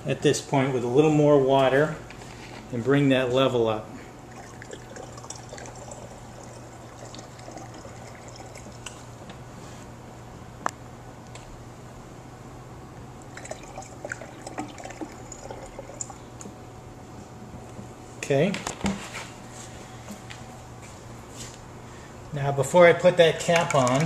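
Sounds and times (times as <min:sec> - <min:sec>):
steady low hum: 0:00.0 - 0:24.0
water trickling into tank: 0:04.2 - 0:09.0, 0:13.2 - 0:16.5.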